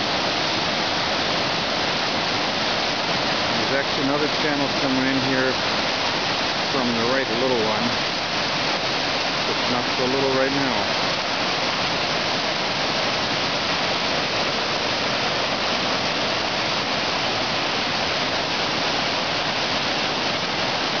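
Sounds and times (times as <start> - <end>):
whitewater rushing over rocks: 0.0 - 21.0.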